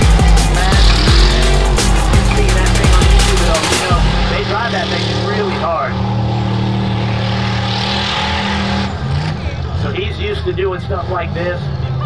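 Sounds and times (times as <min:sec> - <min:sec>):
truck engine revving: 0:00.0 - 0:12.0
voices shouting: 0:00.0 - 0:12.0.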